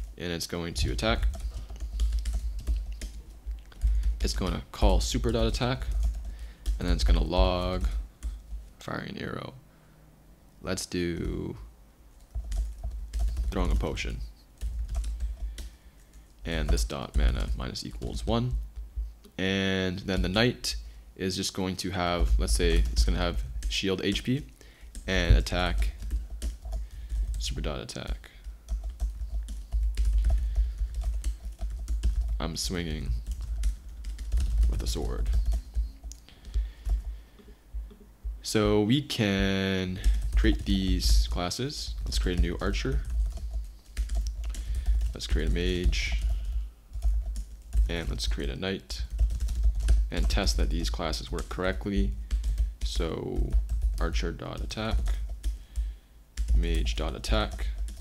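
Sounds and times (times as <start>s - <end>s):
computer keyboard typing: 0.8s - 8.6s, 12.2s - 18.6s, 22.2s - 38.0s, 40.0s - 58.0s.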